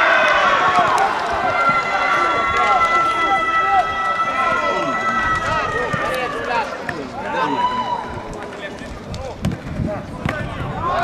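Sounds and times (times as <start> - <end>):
footballers shouting: 0.0 - 8.5, 9.9 - 11.0.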